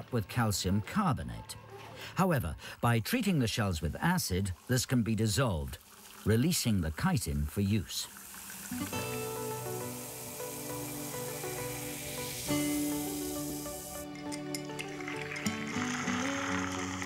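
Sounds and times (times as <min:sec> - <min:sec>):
acid fizzing on shells: 0:03.5 - 0:17.0
music with slow held chords: 0:08.8 - 0:17.0.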